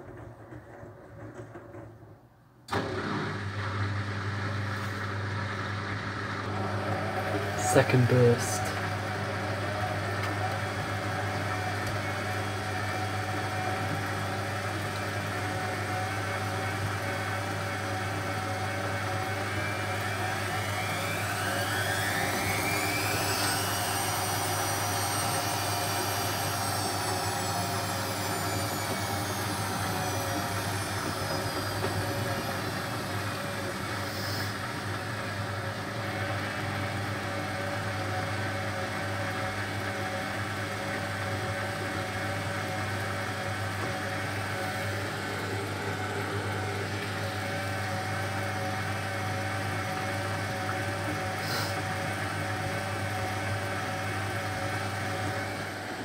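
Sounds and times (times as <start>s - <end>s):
washing machine motor whine: 0.0s - 56.0s.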